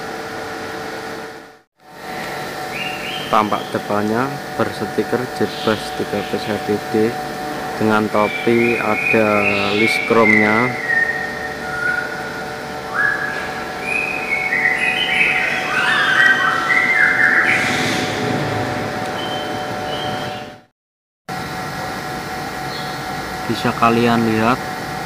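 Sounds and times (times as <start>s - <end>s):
steady background hum: 0.0s - 20.7s, 21.3s - 25.0s.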